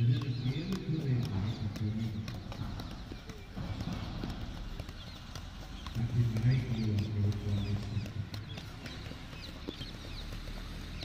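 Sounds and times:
footballs thudding off feet: 0.0 - 11.0.

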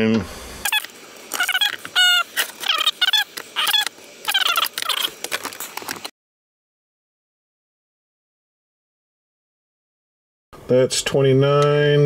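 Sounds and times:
dog whimpering: 0.7 - 5.1.

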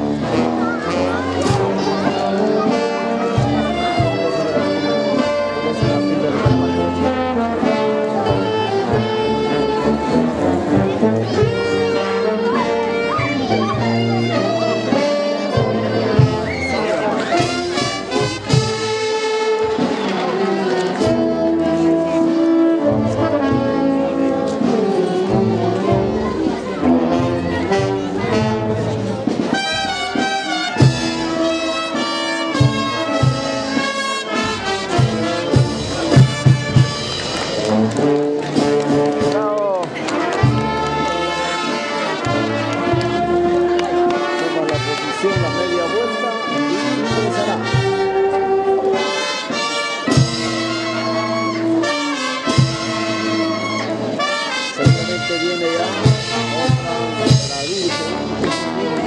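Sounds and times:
brass band playing festive tune: 0.0 - 59.0.

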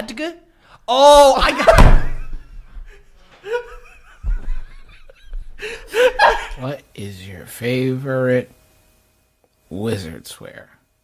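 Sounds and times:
young man snickering: 2.8 - 6.7.

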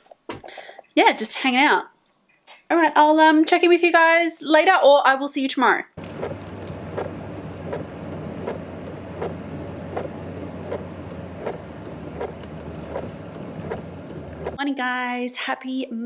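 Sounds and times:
car engine and road hum: 6.0 - 14.6
rain hiss: 6.0 - 14.6
regular ticking: 6.0 - 14.6.

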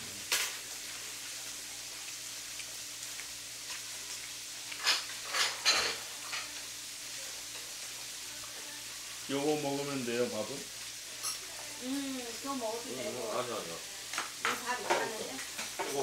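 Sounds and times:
meat sizzling: 0.0 - 16.0.

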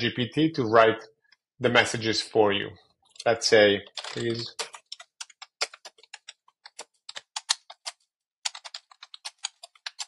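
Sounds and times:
computer keyboard typing: 3.8 - 10.0.

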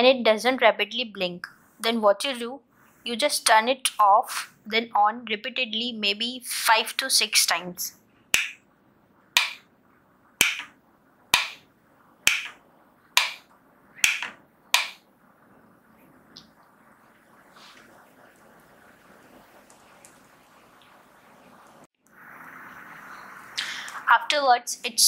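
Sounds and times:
faint room hiss: 0.0 - 25.0
light switch clicking: 10.4 - 10.7, 11.4 - 11.6, 12.3 - 12.6, 13.2 - 13.4, 14.0 - 15.0.

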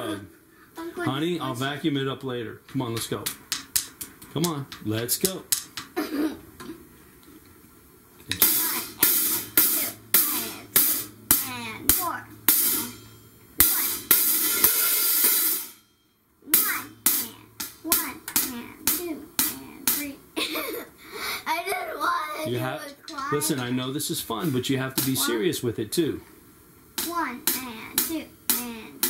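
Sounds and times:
drum strikes: 2.6 - 6.1, 8.3 - 20.4, 22.9 - 25.4, 26.9 - 29.0
cymbal ringing: 8.3 - 20.2.

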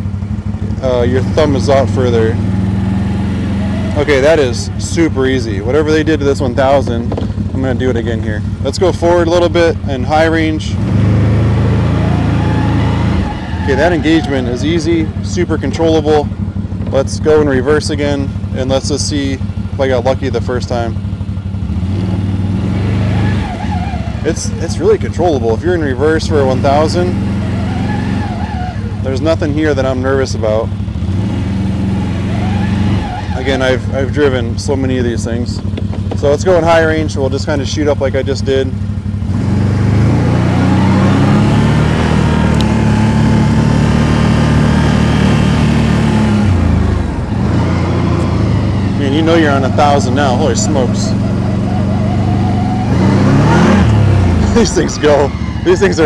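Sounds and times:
atv engine running at low revs: 0.0 - 56.0.

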